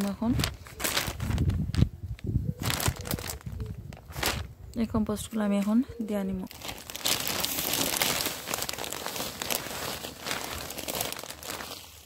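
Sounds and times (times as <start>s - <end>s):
plastic bag crinkling: 0.0s - 4.5s, 6.5s - 12.0s
compost spilling onto soil: 6.5s - 12.0s.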